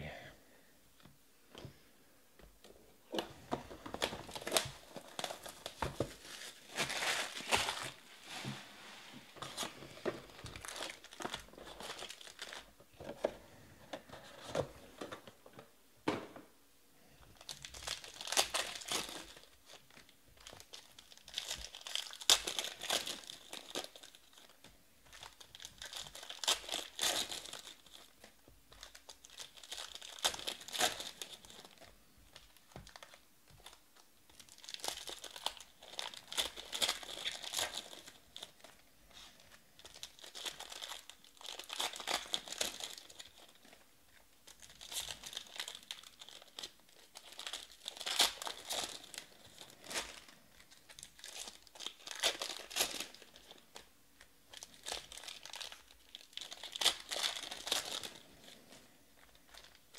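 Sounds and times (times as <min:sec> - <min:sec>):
foil packs crinkling: 0:03.1 - 0:08.5, 0:09.4 - 0:13.3, 0:17.4 - 0:53.9, 0:54.5 - 0:59.9.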